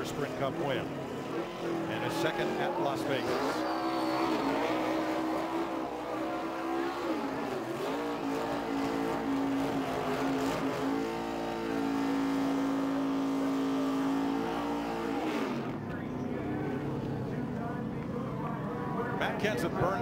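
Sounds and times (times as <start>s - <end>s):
race car engine revving: 0.0s - 19.5s.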